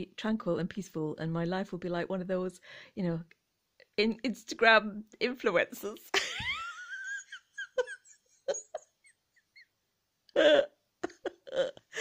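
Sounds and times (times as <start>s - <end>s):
woman laughing: 6.1s - 9.7s, 10.4s - 12.0s.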